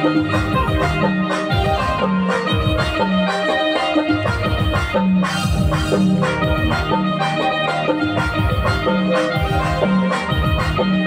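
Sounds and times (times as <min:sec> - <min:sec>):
electronic keyboards: 0:00.0 - 0:11.0
steady drum beat: 0:00.0 - 0:11.0.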